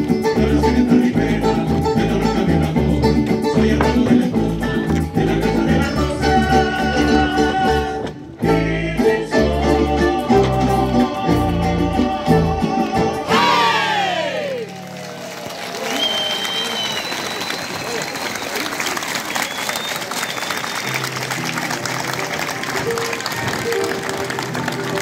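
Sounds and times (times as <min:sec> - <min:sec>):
live band music: 0:00.0 - 0:15.4, 0:20.9 - 0:25.0
audience applauding and cheering: 0:13.3 - 0:25.0
whistles from audience: 0:15.7 - 0:21.3.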